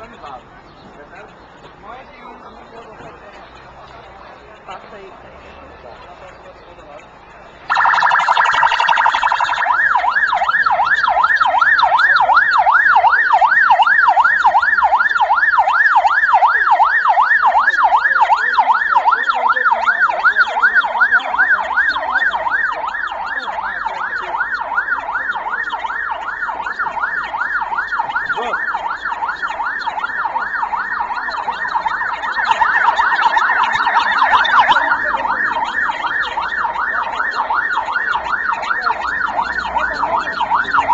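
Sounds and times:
ambulance siren yelping: 7.6s - 40.9s.

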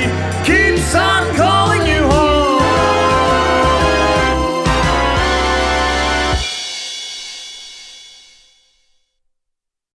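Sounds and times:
big band final chord: 0.9s - 7.2s.

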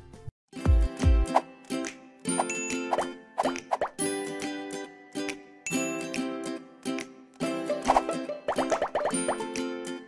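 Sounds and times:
bouncy jingle music: 0.5s - 10.0s.

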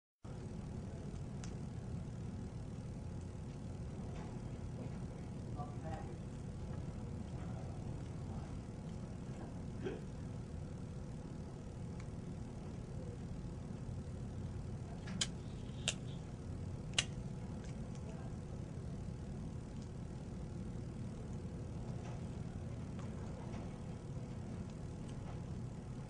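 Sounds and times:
low background rumble: 0.3s - 26.0s.

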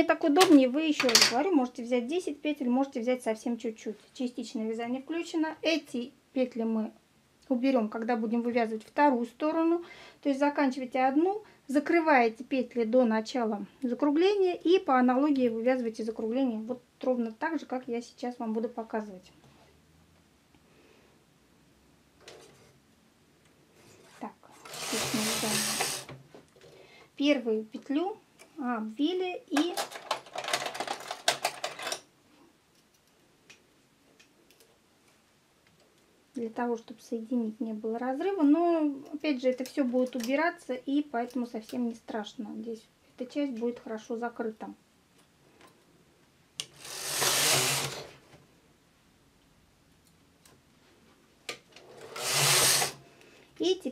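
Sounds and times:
knitting machine carriage sliding: 24.0s - 26.2s, 46.6s - 48.2s, 51.8s - 53.0s.

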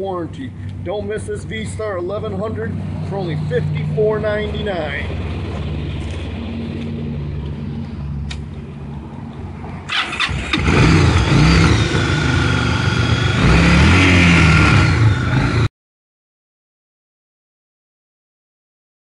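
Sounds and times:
motorcycle engine idling and revving: 0.0s - 15.7s.

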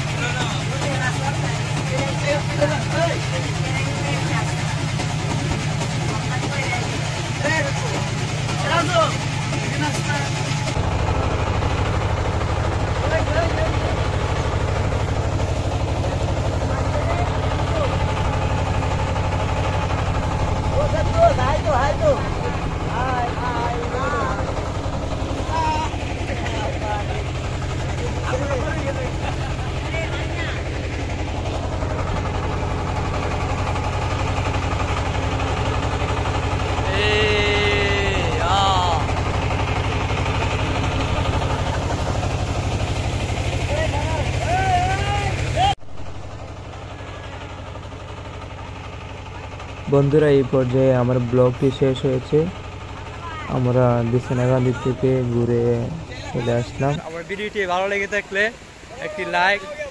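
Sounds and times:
voices: 0.0s - 10.8s, 12.8s - 42.3s, 43.3s - 45.8s, 49.1s - 59.9s
boat engine droning: 0.0s - 59.9s.

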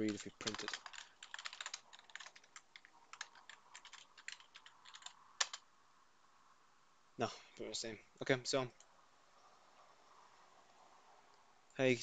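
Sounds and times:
typing on computer keyboard: 0.0s - 5.6s.

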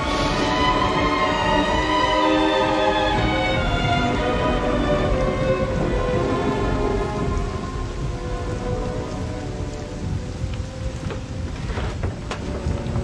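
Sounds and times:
low rumble of thunder: 0.0s - 13.0s
steady rain: 0.0s - 13.0s
string music: 0.0s - 13.0s.

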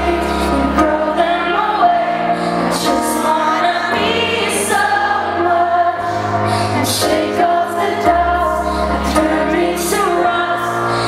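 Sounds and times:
keyboard chords: 0.0s - 11.0s
woman singing: 0.0s - 11.0s.

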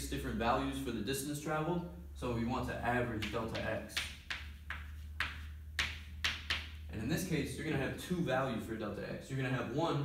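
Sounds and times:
chalk tapping and scraping: 3.2s - 6.9s.

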